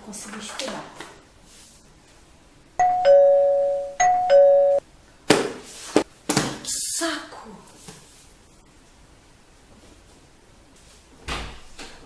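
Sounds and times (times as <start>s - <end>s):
two-tone doorbell ding-dong: 2.8s - 4.8s.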